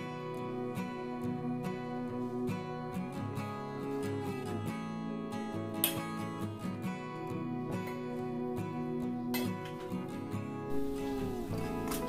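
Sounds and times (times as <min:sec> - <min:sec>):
plucked acoustic guitar chords: 0:00.0 - 0:12.0.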